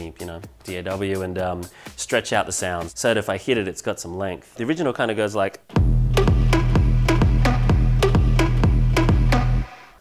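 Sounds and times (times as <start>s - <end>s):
sustained low bass: 5.8s - 9.6s.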